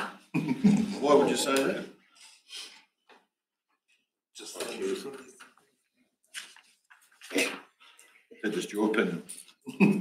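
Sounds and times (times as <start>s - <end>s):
person laughing: 0.3s - 1.0s, 9.7s - 10.0s.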